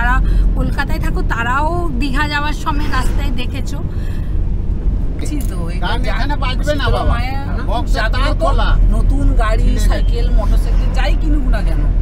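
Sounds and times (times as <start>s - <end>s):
woman talking: 0.0s - 3.9s, 8.9s - 12.0s
car cabin road rumble: 0.0s - 12.0s.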